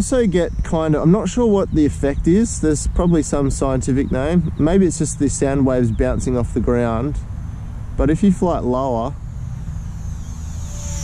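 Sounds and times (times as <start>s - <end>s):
model plane motor whine: 9.2s - 11.0s.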